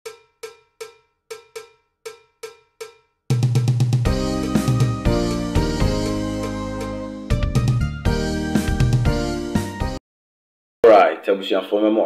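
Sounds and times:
metallic percussion hits: 0.1 - 5.4
loud music with deep bass: 3.4 - 10.0.

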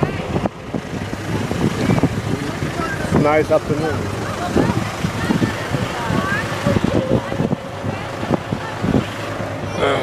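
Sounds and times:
people talking: 0.0 - 10.0
wagon rumbling: 0.0 - 10.0.

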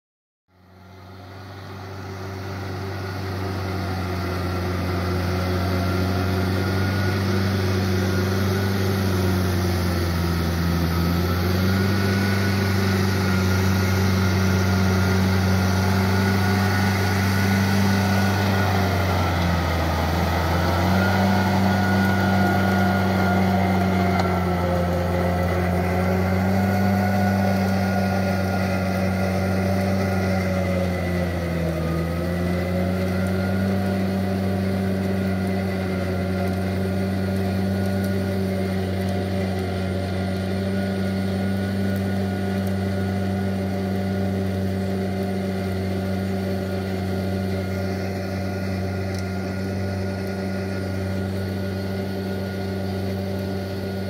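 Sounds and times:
tractor diesel engine running: 0.5 - 54.0
rotary tiller churning mud: 0.6 - 54.0.

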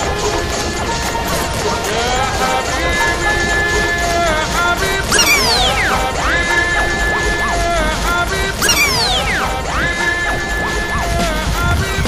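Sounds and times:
synth pitch glides: 0.0 - 11.8
high synth tone: 0.0 - 12.0.

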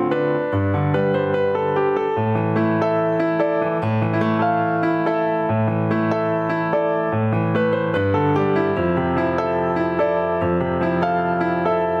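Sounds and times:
solo piano music: 0.0 - 12.0.

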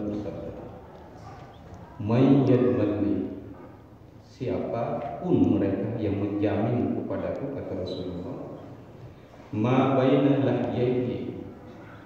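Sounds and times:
man speaking: 0.0 - 0.7, 2.0 - 3.5, 4.2 - 8.7, 9.5 - 11.6.

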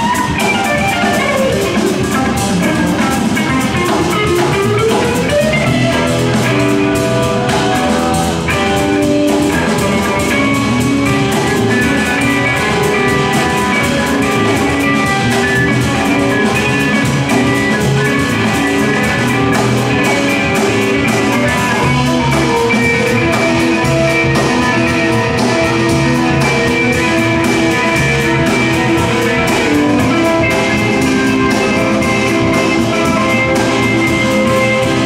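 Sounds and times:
live jazz band: 0.0 - 35.0.

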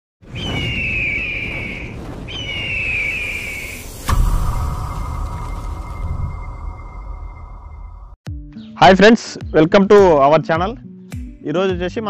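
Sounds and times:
low rumble: 0.6 - 8.2.

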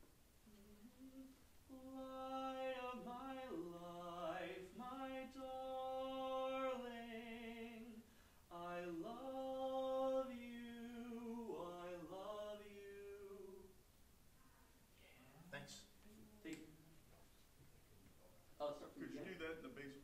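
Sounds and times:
man singing unaccompanied: 1.7 - 13.8.

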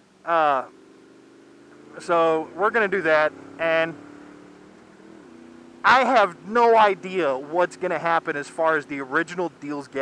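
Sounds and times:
motorcycle engine cruising: 0.0 - 10.0
man speaking: 0.3 - 0.7, 2.0 - 4.0, 5.9 - 10.0.

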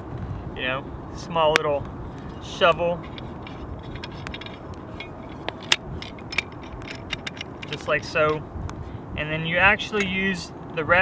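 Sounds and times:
shovel handle clicks and clinks: 2.4 - 8.4.

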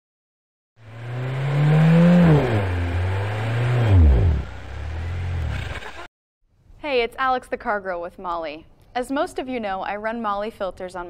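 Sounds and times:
car engine revving: 0.8 - 6.1.

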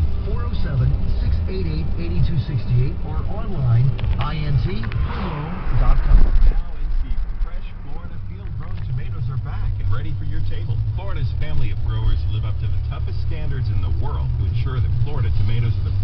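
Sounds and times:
car engine and road rumble: 0.0 - 16.0
indistinct talking: 0.0 - 16.0.

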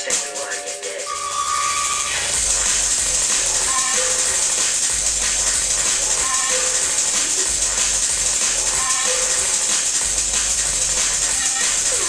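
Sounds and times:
drum and bass music: 0.0 - 12.0.

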